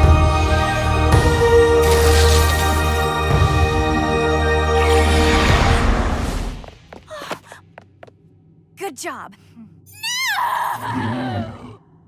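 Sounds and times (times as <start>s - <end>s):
woman screaming: 9.9s - 11.1s.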